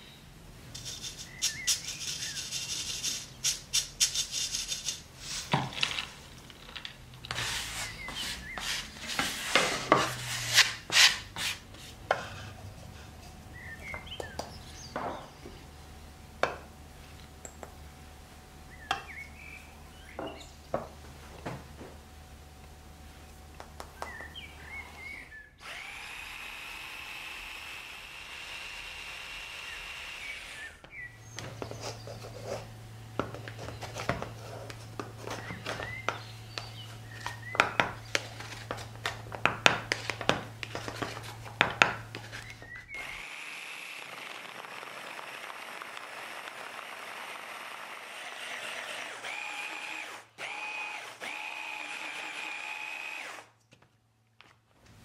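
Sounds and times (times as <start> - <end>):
food processor whining: 25.6 - 31.0, 42.4 - 53.5.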